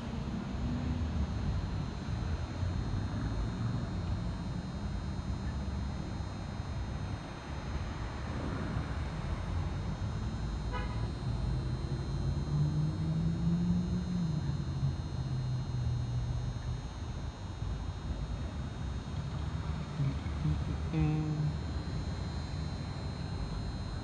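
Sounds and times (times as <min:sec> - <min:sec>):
road vehicles rumbling: 0:00.0 - 0:24.0
engine hum: 0:08.3 - 0:24.0
car horn beep: 0:10.7 - 0:11.2.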